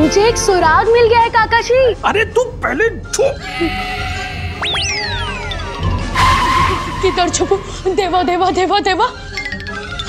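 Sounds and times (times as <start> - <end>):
comedic tyre screech effect: 3.4 - 8.0.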